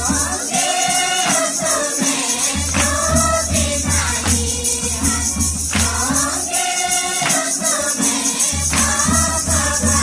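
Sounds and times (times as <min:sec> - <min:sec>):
group singing a hymn: 0:00.0 - 0:10.0
rhythmic jingling percussion: 0:00.0 - 0:10.0.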